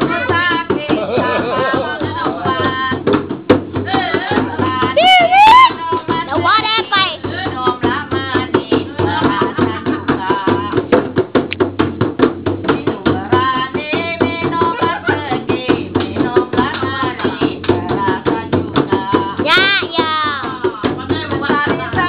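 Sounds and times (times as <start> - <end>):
woman singing: 0.0 - 11.1, 12.6 - 22.0
frame drums beaten: 0.0 - 22.0.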